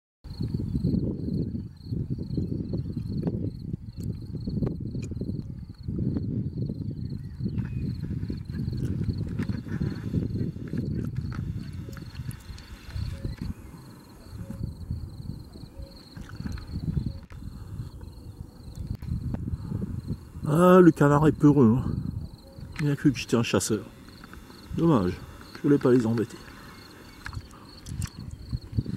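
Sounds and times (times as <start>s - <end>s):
wind noise on microphone: 0.2s - 28.9s
high insect trill: 0.3s - 28.9s.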